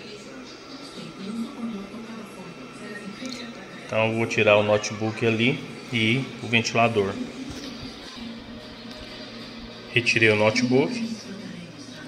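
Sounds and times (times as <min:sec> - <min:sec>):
quiet music from television: 0:00.0 - 0:12.0.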